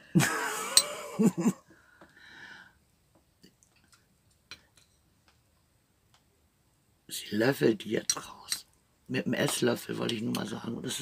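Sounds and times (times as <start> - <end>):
person speaking: 7.1 - 11.0.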